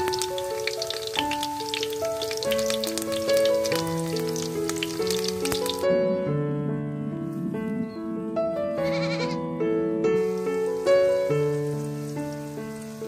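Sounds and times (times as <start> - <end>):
piano music: 0.0 - 13.0
goat bleating: 8.8 - 9.4.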